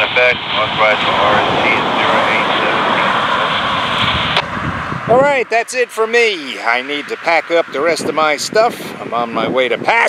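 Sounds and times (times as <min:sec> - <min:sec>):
faint radio voice: 0:00.0 - 0:03.6, 0:05.1 - 0:10.0
radio static hiss: 0:00.0 - 0:10.0.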